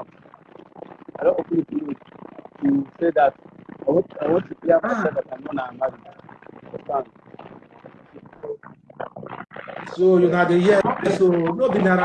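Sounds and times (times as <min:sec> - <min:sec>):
choppy man's voice over call: 0:01.1 - 0:02.0, 0:02.6 - 0:07.1, 0:09.8 - 0:12.0.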